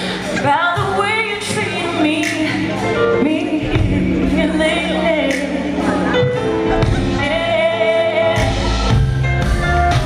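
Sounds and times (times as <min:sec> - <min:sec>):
live r and b band music: 0:00.0 - 0:10.0.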